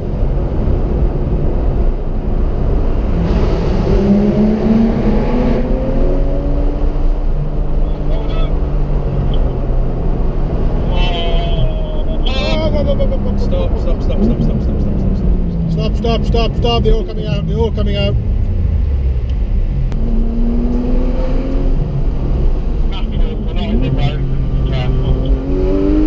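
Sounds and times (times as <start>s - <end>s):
car engine accelerating: 0.0s - 26.0s
road and wind noise: 0.0s - 26.0s.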